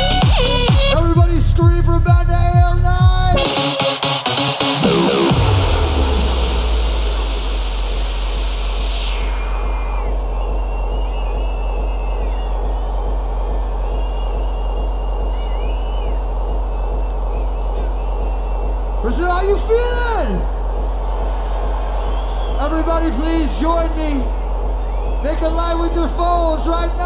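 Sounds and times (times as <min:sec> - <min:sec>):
crowd cheering and whistling: 0:03.4 - 0:27.0
high noise sweep: 0:04.8 - 0:19.0.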